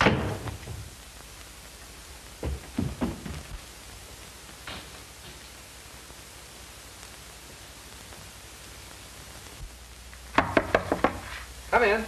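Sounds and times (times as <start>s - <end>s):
man speaking: 11.7s - 12.0s.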